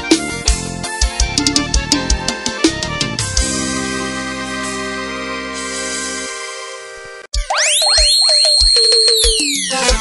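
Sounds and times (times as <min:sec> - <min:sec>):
keyboard dance music: 0:00.0 - 0:10.0.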